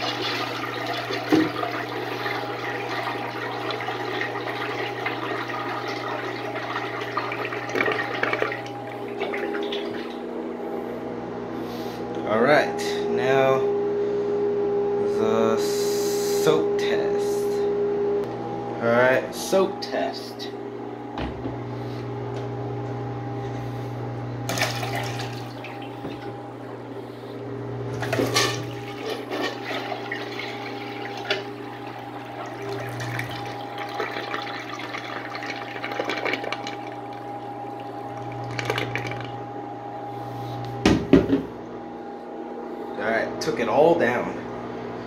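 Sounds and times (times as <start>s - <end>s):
toilet flushing: 0.0s - 10.3s, 24.4s - 26.8s, 27.9s - 39.5s.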